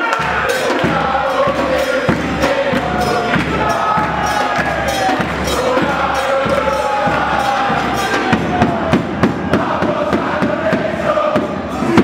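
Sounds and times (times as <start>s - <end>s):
crowd cheering: 0.0s - 12.0s
crowd singing along: 0.0s - 12.0s
person singing over a beat: 0.0s - 12.0s.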